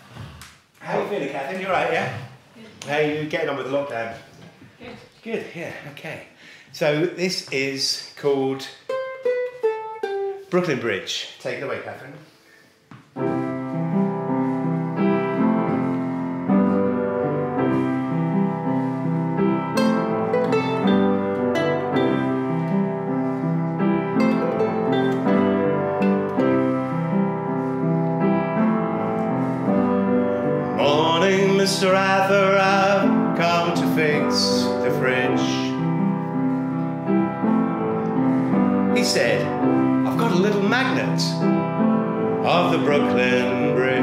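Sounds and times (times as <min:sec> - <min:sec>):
upright piano chords: 0:13.2 - 0:44.0.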